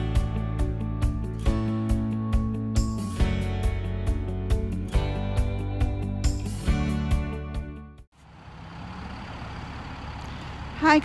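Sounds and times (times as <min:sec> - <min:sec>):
road traffic hum: 0:08.1 - 0:11.0.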